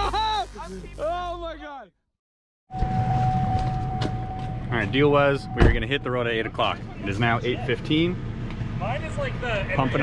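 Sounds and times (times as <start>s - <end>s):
man talking: 4.7s - 8.2s.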